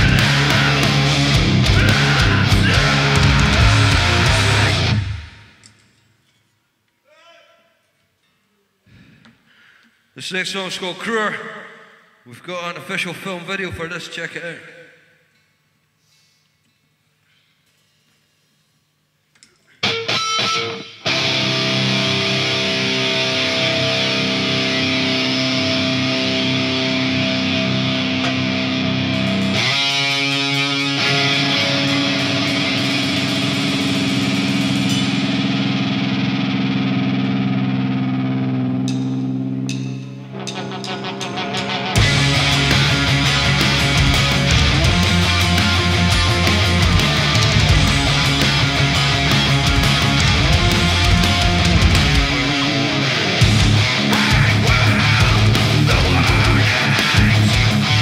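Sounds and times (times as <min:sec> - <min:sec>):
fast drumming: 0:00.0 - 0:05.0, 0:40.5 - 0:52.6, 0:53.4 - 0:58.0
heavy metal band playing: 0:00.0 - 0:05.6, 0:19.8 - 0:58.0
distorted electric guitar riff: 0:00.0 - 0:05.8, 0:19.8 - 0:58.0
person calling out: 0:01.7 - 0:03.6, 0:07.0 - 0:07.8.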